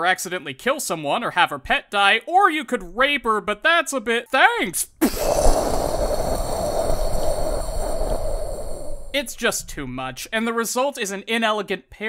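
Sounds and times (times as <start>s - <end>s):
explosion blast and rumble: 5.1s - 10.4s.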